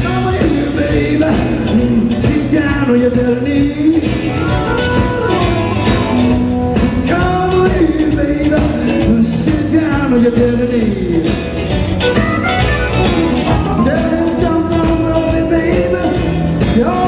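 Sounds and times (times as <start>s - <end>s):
bass guitar: 0.0s - 17.0s
drums: 0.0s - 17.0s
electric guitar: 0.0s - 17.0s.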